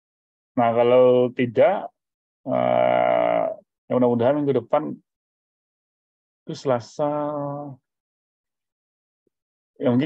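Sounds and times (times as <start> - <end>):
man speaking: 9.8 - 10.0.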